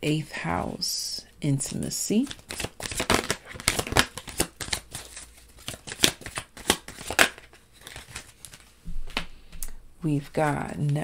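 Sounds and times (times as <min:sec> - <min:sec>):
cards clicking and tapping: 0:02.2 - 0:09.3.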